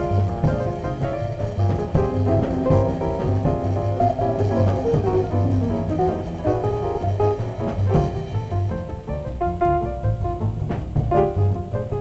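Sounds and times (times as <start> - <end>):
archtop guitar: 0.0 - 12.0
drums: 0.0 - 12.0
piano: 0.0 - 12.0
plucked upright bass: 0.0 - 12.0.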